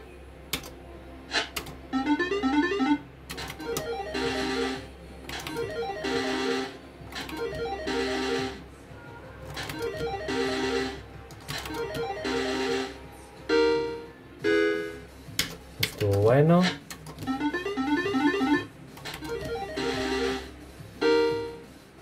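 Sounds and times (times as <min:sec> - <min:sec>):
slot machine jingle: 0:01.3 - 0:08.7, 0:09.5 - 0:15.1, 0:16.0 - 0:21.6.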